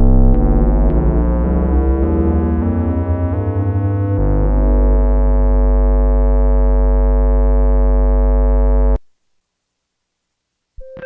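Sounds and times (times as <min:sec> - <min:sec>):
deep synthesizer bass note: 0:00.0 - 0:09.0.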